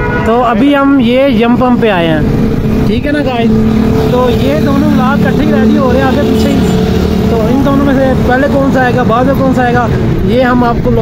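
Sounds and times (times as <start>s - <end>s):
street traffic hum: 0.0s - 11.0s
man talking: 0.2s - 11.0s.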